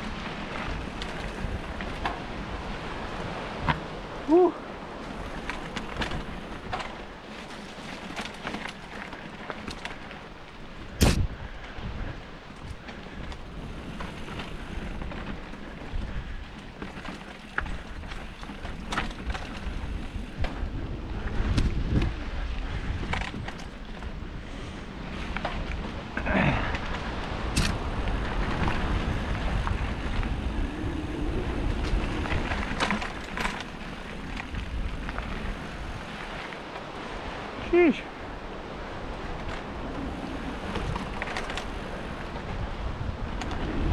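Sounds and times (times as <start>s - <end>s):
bike chain and frame rattling: 0.0s - 11.7s, 12.4s - 37.2s, 38.9s - 43.9s
bike tyres rolling over dirt: 0.0s - 43.9s.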